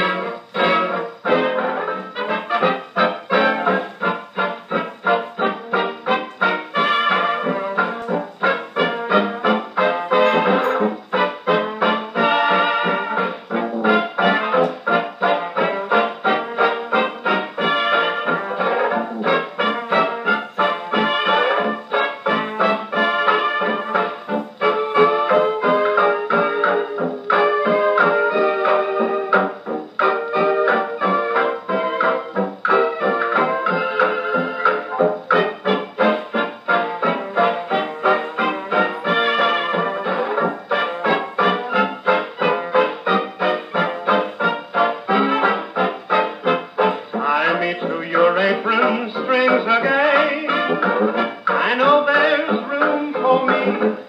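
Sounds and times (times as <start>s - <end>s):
dance-band jazz record: 0.0s - 54.0s.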